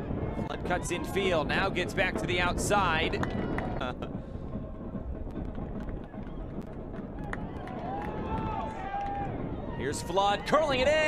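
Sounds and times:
stadium crowd rumble: 0:00.0 - 0:11.0.

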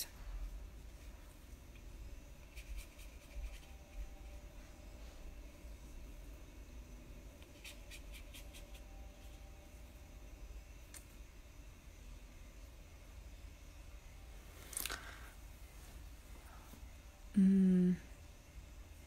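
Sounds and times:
low steady hum: 0:00.0 - 0:19.0
paintbrush scratching on paper: 0:02.4 - 0:04.2, 0:07.5 - 0:08.9.

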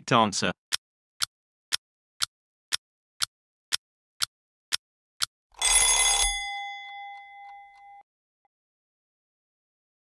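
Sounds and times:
timer tick: 0:00.7 - 0:05.4, 0:06.8 - 0:08.0.

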